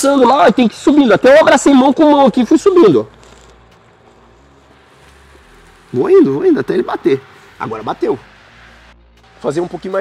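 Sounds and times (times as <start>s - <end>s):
room hiss: 3.0s - 9.9s.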